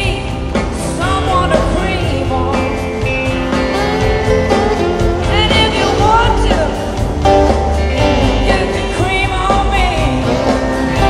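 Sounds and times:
rock band playing live: 0:00.0 - 0:11.0
electric guitar lead bending notes: 0:01.3 - 0:11.0.

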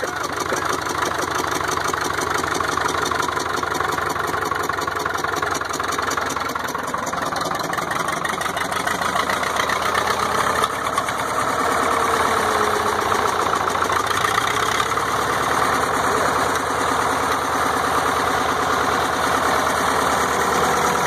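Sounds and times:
bulldozer diesel engine running: 0:00.0 - 0:21.0.

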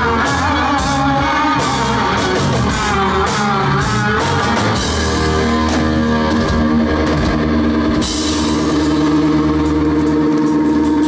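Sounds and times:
drums: 0:00.0 - 0:11.0
electric guitar chord ringing: 0:00.0 - 0:11.0
cymbal crash: 0:03.4 - 0:11.0.

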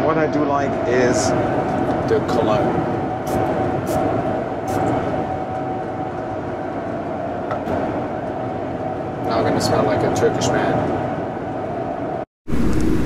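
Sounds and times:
airliner cabin noise: 0:00.0 - 0:13.0.

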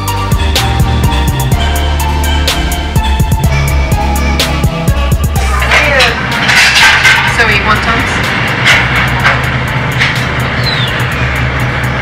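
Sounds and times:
background music: 0:00.0 - 0:12.0
steady low hum: 0:00.3 - 0:12.0
indistinct voices: 0:05.2 - 0:11.2
dishes and utensils clicking: 0:05.4 - 0:10.8.

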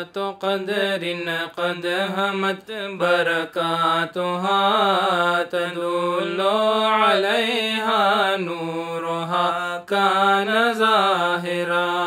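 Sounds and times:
person chanting a slow melody: 0:00.0 - 0:12.0.

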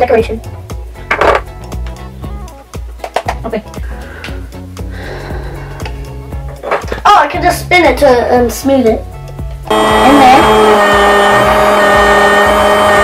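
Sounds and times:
background music with bass: 0:00.0 - 0:13.0.

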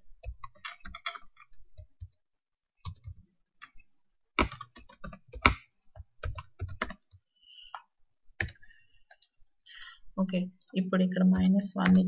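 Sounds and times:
typing on computer keyboard: 0:00.2 - 0:02.2, 0:02.8 - 0:03.2, 0:04.4 - 0:07.8, 0:08.4 - 0:09.6, 0:10.6 - 0:12.0.

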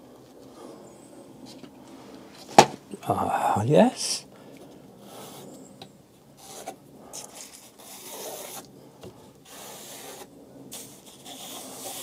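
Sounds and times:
pencil scratching on paper: 0:06.4 - 0:08.6, 0:09.5 - 0:12.0.

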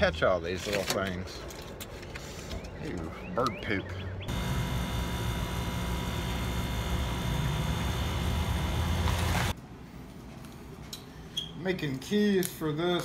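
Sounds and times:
thin whining tones: 0:04.3 - 0:09.5
steady mechanical rumble: 0:04.3 - 0:09.8.

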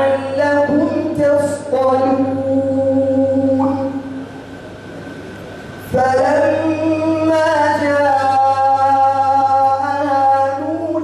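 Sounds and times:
chanted recitation: 0:00.0 - 0:04.4, 0:05.8 - 0:11.0
sound system hiss and hum: 0:00.0 - 0:11.0.

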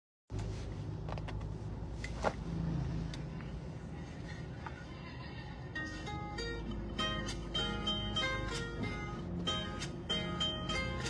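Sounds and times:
car engine idling hum: 0:00.3 - 0:11.0.

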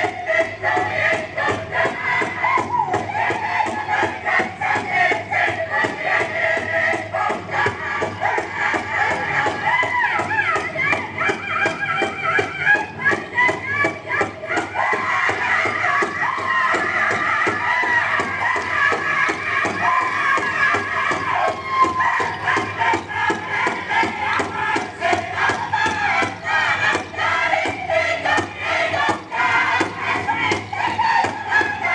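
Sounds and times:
group singing in wavering voices: 0:00.0 - 0:31.9.

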